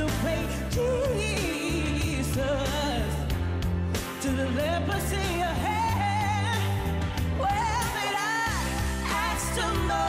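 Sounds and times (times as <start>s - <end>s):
person singing with vibrato: 0.0s - 10.0s
pop backing track bass line: 0.0s - 10.0s.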